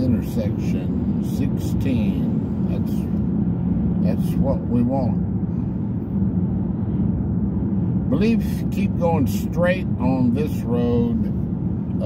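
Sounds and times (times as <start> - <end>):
vehicle engine and road noise: 0.0 - 12.0.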